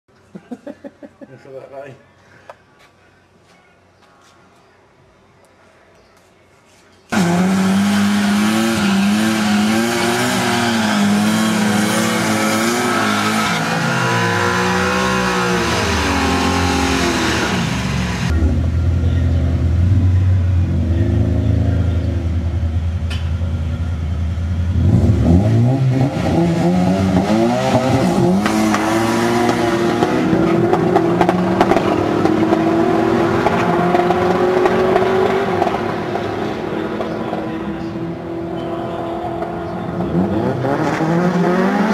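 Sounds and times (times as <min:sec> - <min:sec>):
drag car engine revving: 0:07.2 - 0:38.3, 0:39.3 - 0:41.9.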